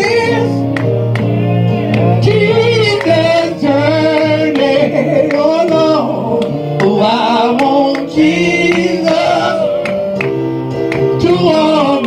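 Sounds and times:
person singing gospel: 0.0 - 0.8, 1.7 - 12.0
instrumental backing: 0.0 - 12.0.

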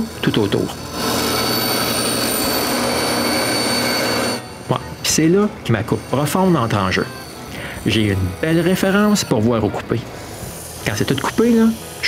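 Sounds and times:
bandsaw cutting wood: 0.0 - 12.0.

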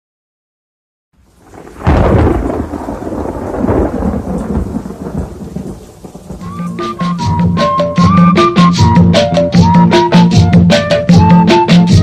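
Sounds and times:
steady rain: 1.2 - 10.4
thunder crack rolling: 1.3 - 10.3
music with melody and rattle: 6.3 - 12.0.

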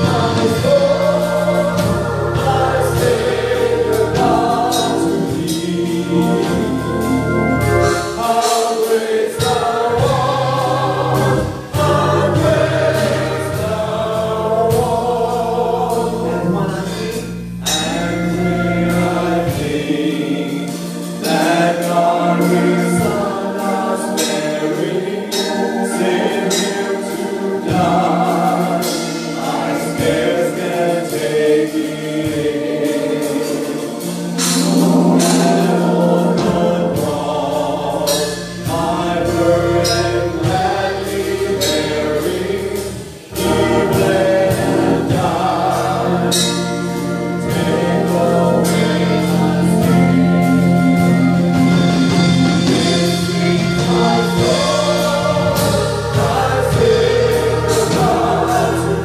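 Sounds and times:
gospel choir singing: 0.0 - 59.0
keyboard bass notes: 0.0 - 59.0.

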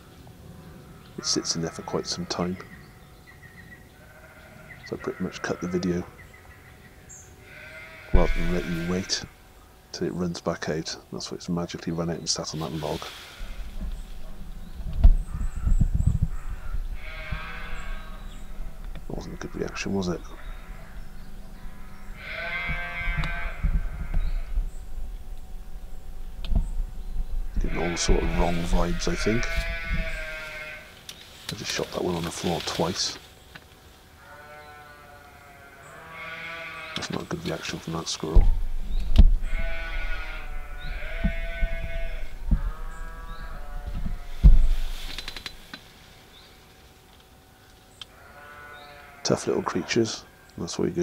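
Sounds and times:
sheep bleating: 4.0 - 6.1, 7.4 - 9.4, 15.2 - 24.7, 27.5 - 30.9, 34.2 - 38.4, 39.4 - 45.0, 48.1 - 50.5
animal crying: 7.0 - 9.5, 12.6 - 30.9, 34.2 - 45.1
low thuds: 13.4 - 30.4, 38.4 - 45.1
low thumps: 13.4 - 30.6, 38.4 - 45.5.

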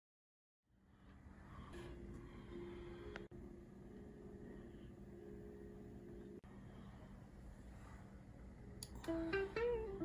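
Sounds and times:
faint room noise: 0.7 - 10.0.

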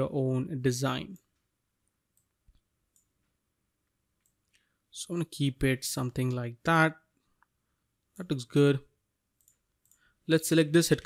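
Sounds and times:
computer mouse clicks: 1.1 - 3.4, 4.2 - 4.7, 9.4 - 10.1.

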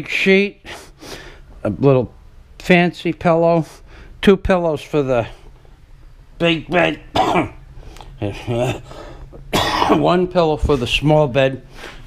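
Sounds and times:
man clearing his throat: 7.1 - 7.6, 9.5 - 10.2
man coughing: 7.1 - 7.6, 9.5 - 10.2.

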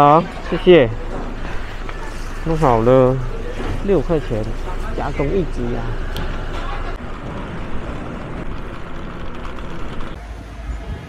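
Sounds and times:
street traffic hum: 0.0 - 10.2
scooter road noise rumble: 0.3 - 10.2
wind buffeting microphone: 5.4 - 10.2.

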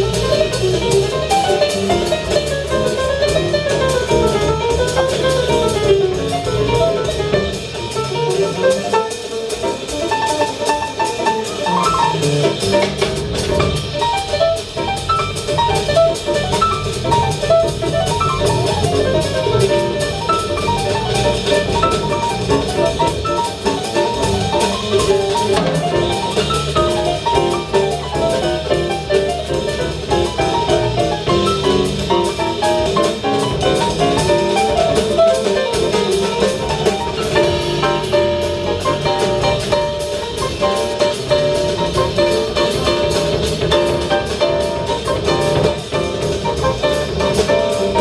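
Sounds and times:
drum kit with cymbals: 0.0 - 48.0
grand piano: 0.0 - 48.0
upright bass: 0.0 - 48.0.

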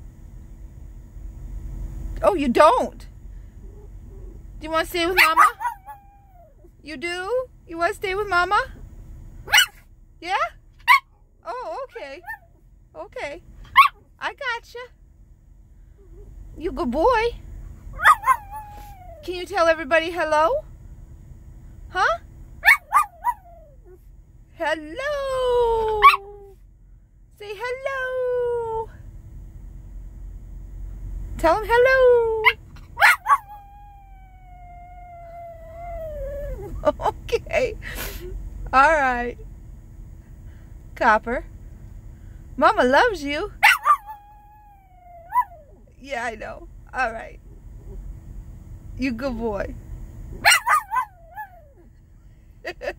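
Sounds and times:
small dog whining yips: 5.2 - 6.6, 13.7 - 14.0, 18.0 - 19.3, 22.6 - 24.0, 26.0 - 26.3, 32.4 - 36.8, 43.6 - 45.9, 50.4 - 51.9.

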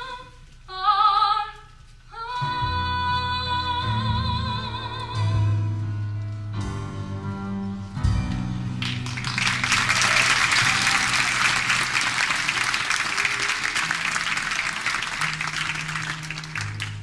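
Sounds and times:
audience applauding: 8.8 - 17.0.

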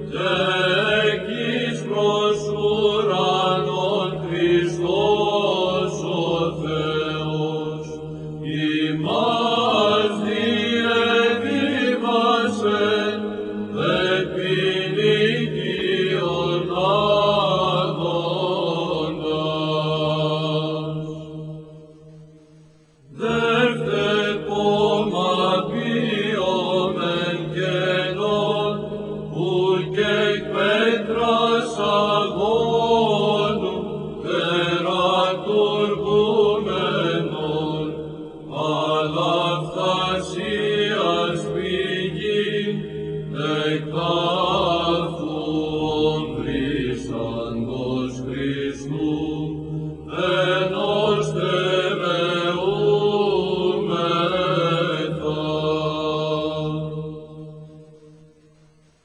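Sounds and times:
held vocal drone: 0.0 - 58.3.

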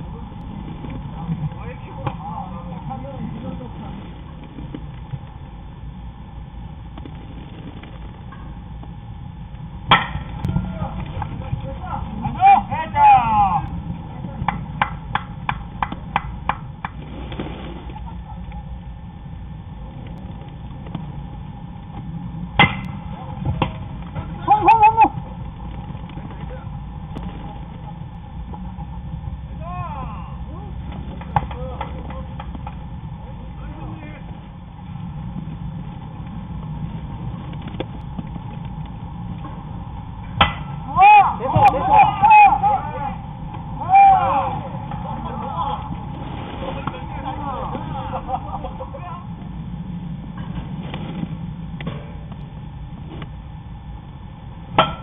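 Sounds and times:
steady low rumble: 0.0 - 55.0
players shouting: 10.4 - 14.6, 23.2 - 25.4, 29.5 - 32.4, 40.4 - 49.3.

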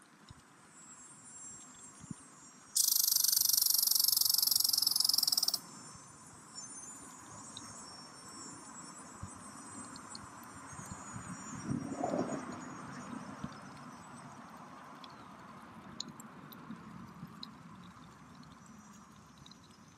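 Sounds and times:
cicada buzzing: 2.8 - 5.7.

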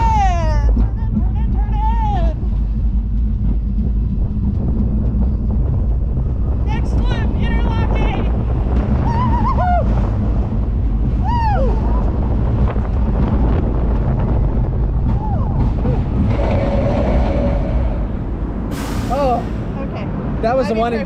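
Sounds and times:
steady whine: 0.0 - 20.0
wind on microphone: 0.0 - 20.5
roller coaster rumbling on track: 0.0 - 21.0.

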